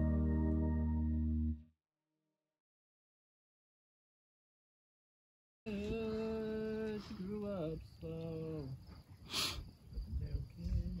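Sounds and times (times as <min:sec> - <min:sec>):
short hiss: 0:09.3 - 0:09.7.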